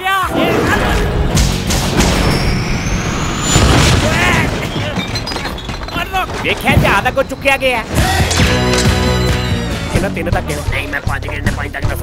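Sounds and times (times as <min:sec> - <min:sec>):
trailer music with deep booms: 0:00.3 - 0:04.0.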